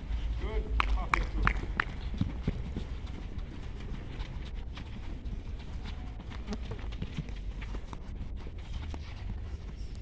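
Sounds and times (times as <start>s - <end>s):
footsteps running on artificial turf: 0.0s - 10.0s.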